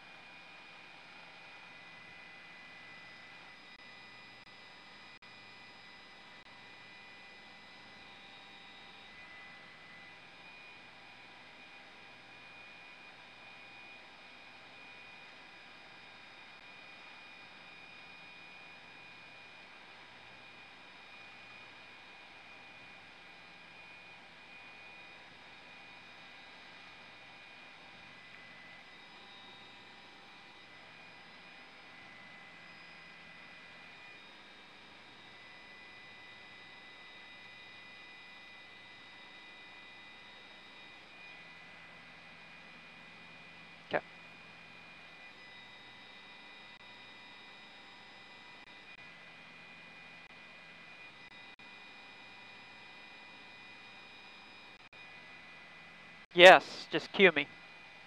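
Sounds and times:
high-pitched whines: 49.9s - 57.6s.

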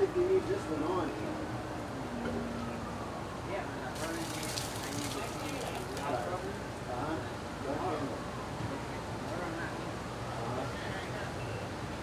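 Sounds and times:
distant people talking: 0.0s - 12.0s.

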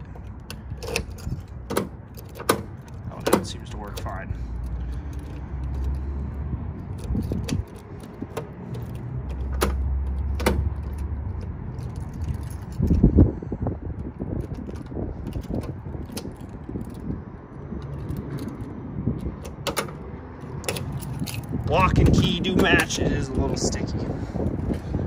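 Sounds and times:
door lock clicks: 0.4s - 4.1s, 6.9s - 11.0s
keys jangling on a ring: 3.8s - 6.2s, 6.8s - 13.2s, 14.1s - 17.2s, 17.8s - 19.5s, 20.4s - 21.7s.

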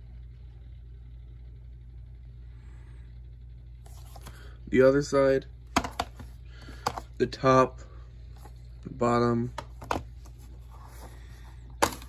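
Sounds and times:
low background hum: 0.0s - 12.0s
handling sound: 5.7s - 7.1s, 9.5s - 12.0s.

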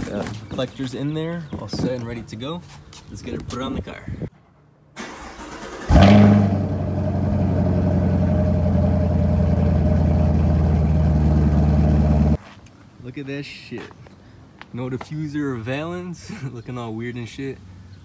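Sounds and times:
car engine cranking: 5.0s - 8.0s
engine revving and idling: 5.6s - 12.4s.

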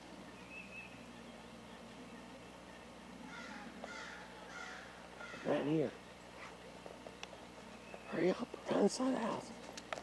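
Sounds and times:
crow cawing: 3.3s - 5.9s.

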